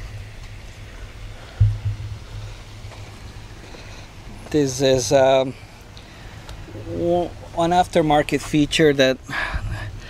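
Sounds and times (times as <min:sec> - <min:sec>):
thump: 0:01.6 - 0:02.2
wind rumble: 0:01.6 - 0:03.5.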